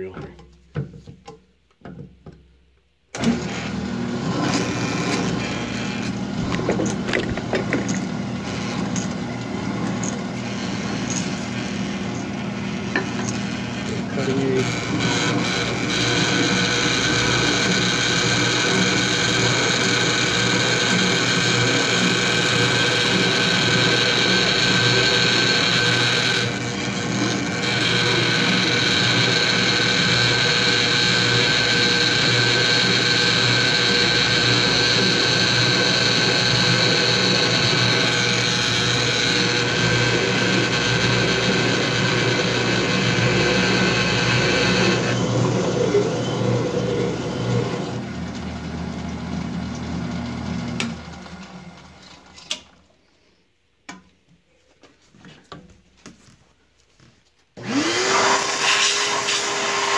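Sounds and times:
machine cutter boring metal: 12.9s - 47.8s, 57.6s - 59.9s.

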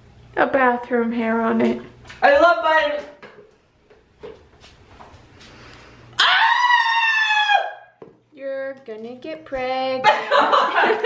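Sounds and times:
person screaming: 6.2s - 7.9s.

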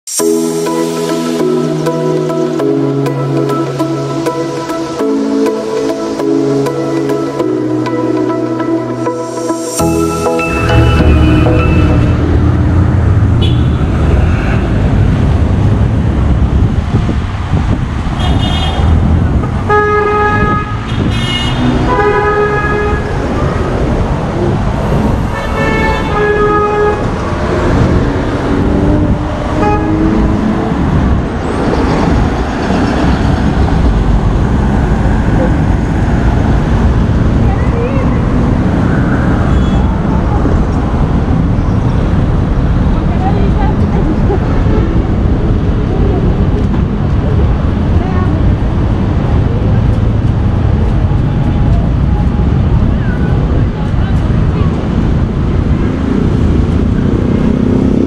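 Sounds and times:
passing cars and trucks rumbling: 0.0s - 58.0s
car horn toots: 10.5s - 12.5s, 13.4s - 13.9s, 19.7s - 23.2s, 25.3s - 27.2s, 29.5s - 30.2s.

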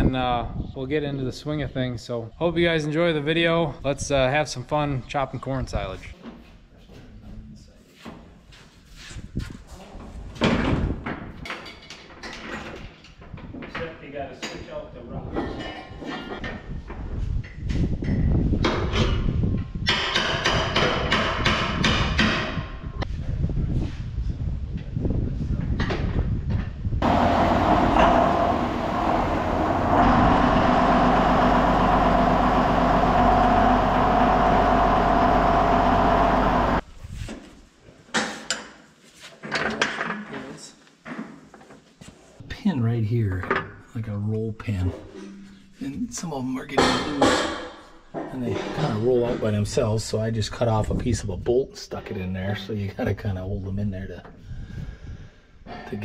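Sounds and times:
clanks of heavy wheels: 27.0s - 36.8s
tractor diesel engine running: 27.0s - 36.8s.

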